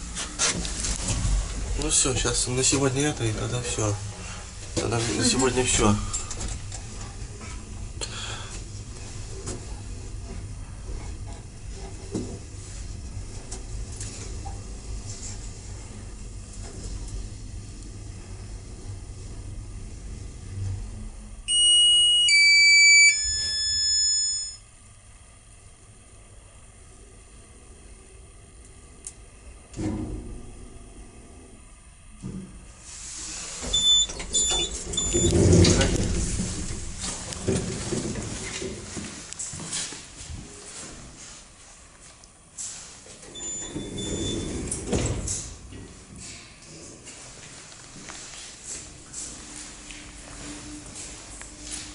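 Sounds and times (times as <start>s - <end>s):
elevator running hum: 0.0s - 51.9s
faint high whine: 21.4s - 24.8s
three-tone descending chime: 21.5s - 24.6s
thump: 29.8s - 30.4s
elevator doors sliding closed: 33.2s - 38.8s, 43.2s - 45.8s
elevator doors knocking shut: 33.8s - 36.9s.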